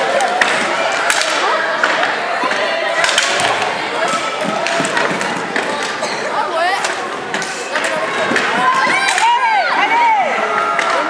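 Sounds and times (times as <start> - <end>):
hockey sticks clacking: 0.0 - 11.0
voices of players and spectators: 0.0 - 11.0
inline skates rolling: 3.4 - 9.8.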